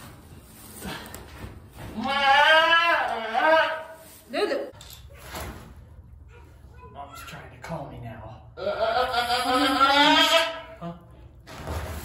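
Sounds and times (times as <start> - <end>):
goat bleating: 2.0 - 4.0, 8.6 - 10.8.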